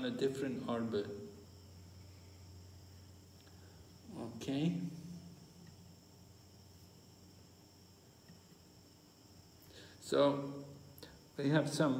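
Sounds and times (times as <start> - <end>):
faint high-pitched whine: 0.0 - 11.9.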